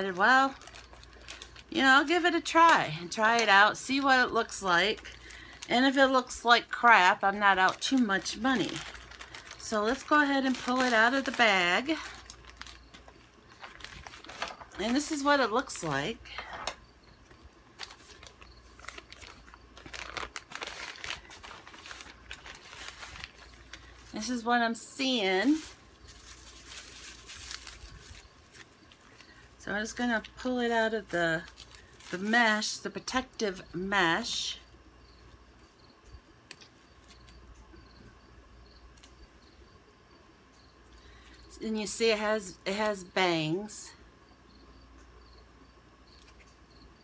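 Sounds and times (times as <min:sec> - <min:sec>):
plastic packaging crinkling: 0:00.0 - 0:33.2.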